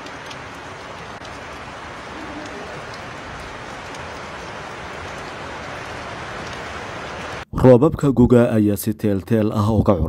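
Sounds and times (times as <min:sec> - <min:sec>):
steady rain falling: 0:00.0 - 0:07.5.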